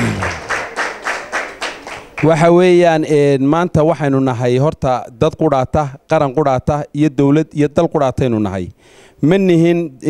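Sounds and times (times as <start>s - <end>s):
audience clapping: 0.0s - 2.4s.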